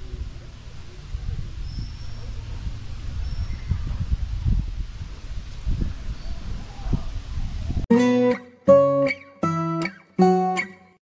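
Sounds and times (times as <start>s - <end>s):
wind rumbling on microphone: 0.0s - 7.9s
acoustic guitar strumming: 7.9s - 11.0s.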